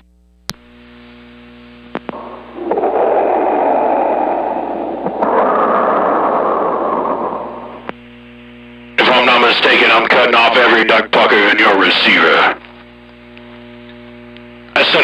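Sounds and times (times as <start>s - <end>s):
radio receiver hum: 0.0s - 15.0s
radio clicks: 1.9s - 2.3s
radio static rush: 2.0s - 12.8s, 14.8s - 15.0s.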